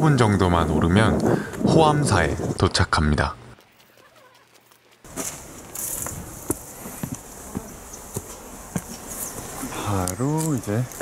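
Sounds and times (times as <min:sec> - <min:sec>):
footsteps on stone steps: 0:01.2 - 0:11.0.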